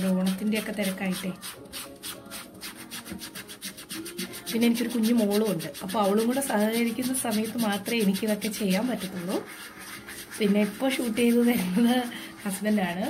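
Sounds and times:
toothbrush scrubbing cloth: 0.0 - 13.0.

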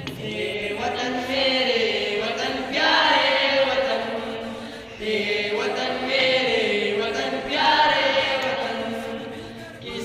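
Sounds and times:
boys singing in unison: 0.0 - 10.0.

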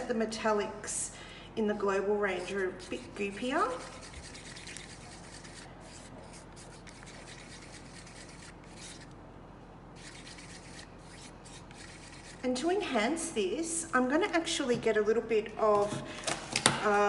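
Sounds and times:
stick stirring thick paint: 1.6 - 9.1, 10.0 - 12.6.

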